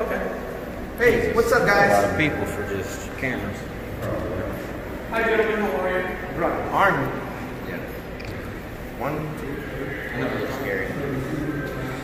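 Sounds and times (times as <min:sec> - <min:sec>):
men talking indistinctly: 0:00.0 - 0:12.0
man speaking: 0:01.0 - 0:07.9, 0:09.0 - 0:12.0
high wavering vocal sound: 0:09.2 - 0:12.0.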